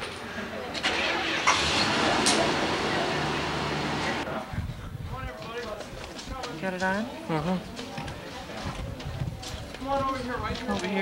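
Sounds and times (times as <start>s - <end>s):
voices in background: 0.2s - 11.0s
vehicle engine starting and running: 0.7s - 4.3s.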